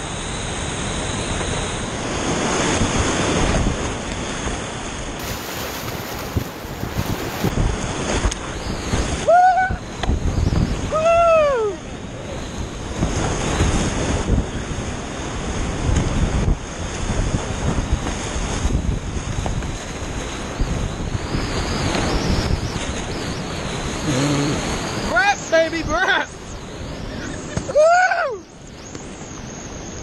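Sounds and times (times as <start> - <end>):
wind buffeting microphone: 2.2 - 27.8
whitewater rapids rushing: 5.2 - 7.6.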